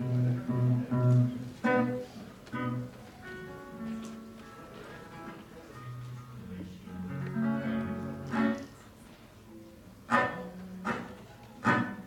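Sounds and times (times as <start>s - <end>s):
acoustic guitar playing: 0.0s - 2.0s, 7.1s - 8.7s, 10.1s - 12.0s.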